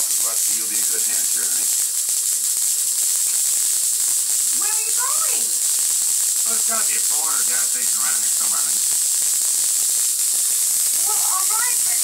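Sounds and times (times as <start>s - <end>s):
high-voltage arc crackling: 0.0s - 12.0s.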